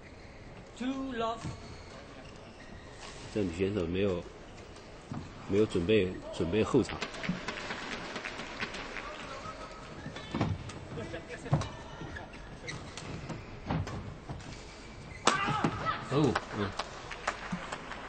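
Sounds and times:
shoes squeaking on court: 0:00.0 - 0:03.4, 0:09.1 - 0:15.9.

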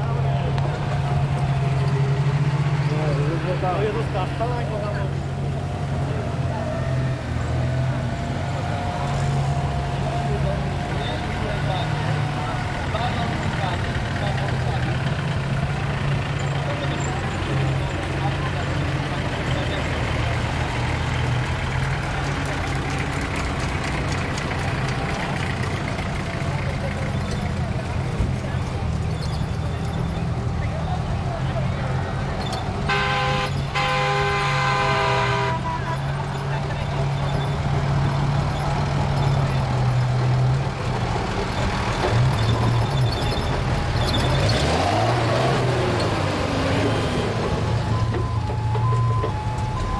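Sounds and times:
people talking indistinctly: 0:00.0 - 0:33.2
off-road vehicle engines: 0:00.0 - 0:49.9.

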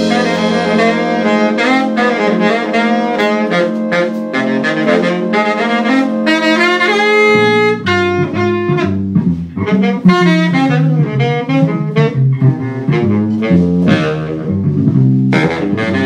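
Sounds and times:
big band horn section playing jazz: 0:00.0 - 0:16.0.

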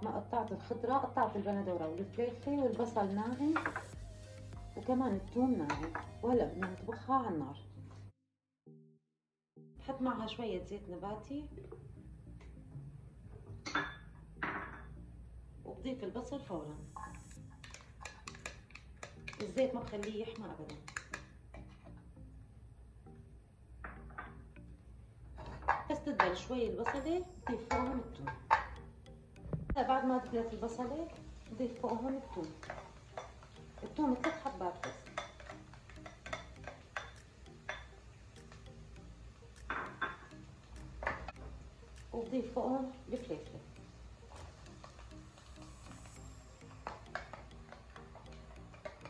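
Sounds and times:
faint background music: 0:00.0 - 0:09.0, 0:09.6 - 0:49.0
spoon tapping bowl: 0:17.6 - 0:21.7, 0:25.7 - 0:42.4, 0:46.6 - 0:49.0.

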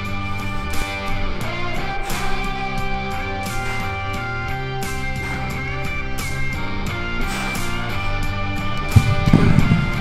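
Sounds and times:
background guitar music: 0:00.0 - 0:10.0
dumbbells thudding on floor: 0:08.9 - 0:10.0.

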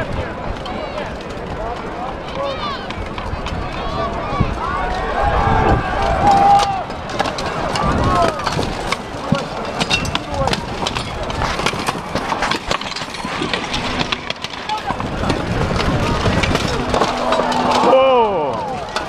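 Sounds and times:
crowd cheering: 0:00.0 - 0:12.5, 0:13.2 - 0:19.0
people yelling: 0:02.3 - 0:10.5, 0:14.3 - 0:19.0
plate armour clanking: 0:06.4 - 0:19.0.

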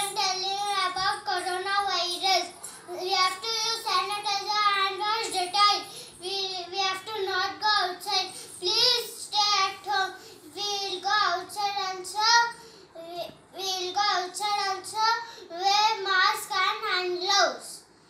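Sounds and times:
boy chanting in sing-song: 0:00.0 - 0:17.9.

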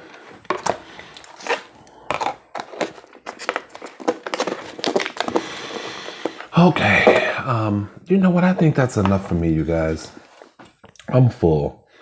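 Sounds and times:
plastic container crinkling: 0:00.5 - 0:07.4.

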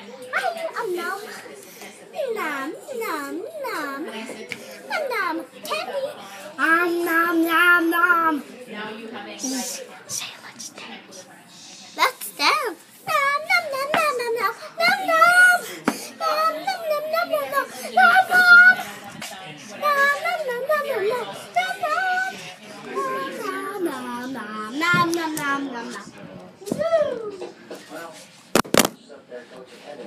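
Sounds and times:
child singing: 0:04.9 - 0:08.4, 0:13.1 - 0:18.9, 0:19.7 - 0:26.0.

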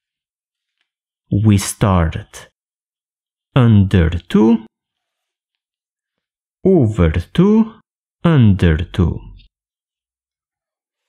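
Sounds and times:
person speaking: 0:01.3 - 0:02.6, 0:03.5 - 0:04.7, 0:06.6 - 0:09.5.

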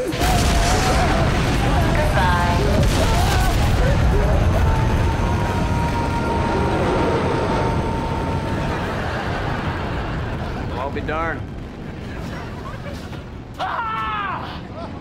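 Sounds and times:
rocket engine roar: 0:00.0 - 0:14.7.

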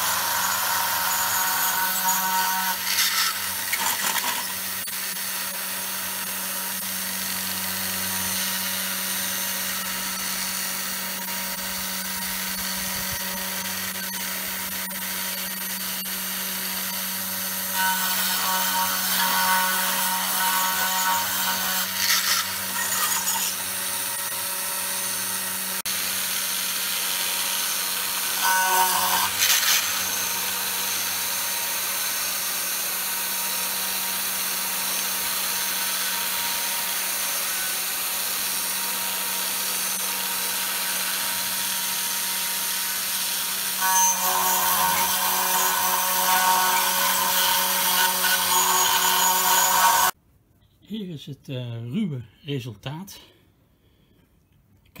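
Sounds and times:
router spindle milling plastic: 0:00.0 - 0:25.3.

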